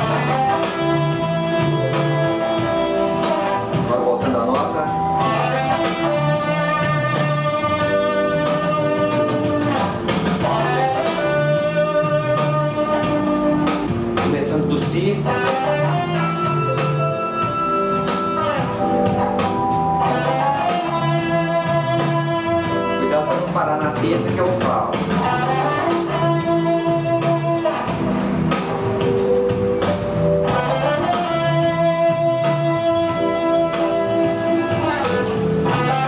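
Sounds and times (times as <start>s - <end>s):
electric guitar melody: 0.0s - 36.0s.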